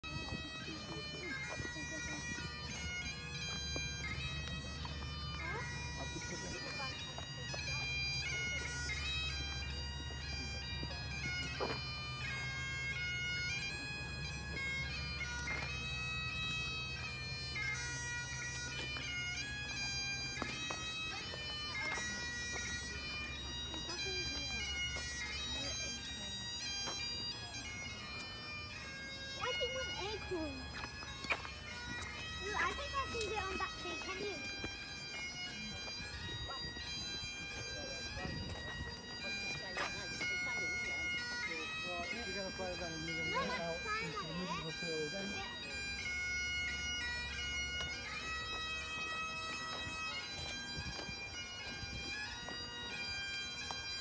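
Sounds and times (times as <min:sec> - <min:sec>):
bagpipes playing: 0:00.0 - 0:54.0.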